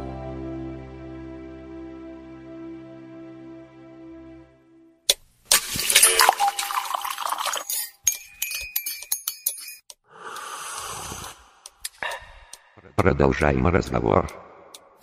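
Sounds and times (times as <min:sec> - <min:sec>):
sharp clinks and clicks: 0:05.7 - 0:10.0.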